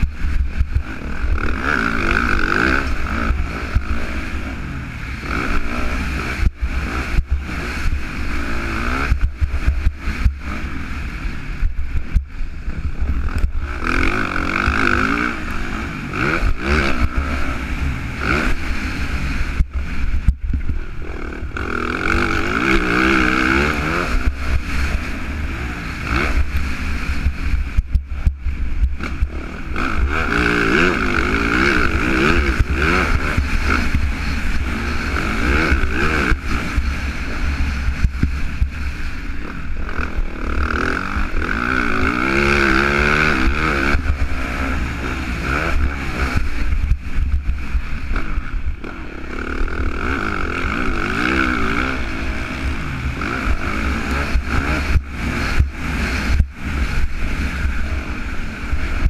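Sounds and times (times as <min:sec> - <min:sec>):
motocross bike engine revving: 0:00.0 - 0:59.0.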